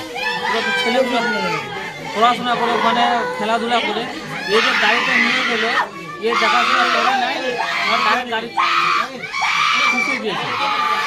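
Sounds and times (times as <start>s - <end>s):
crowd shouting and screaming: 0.0s - 11.0s.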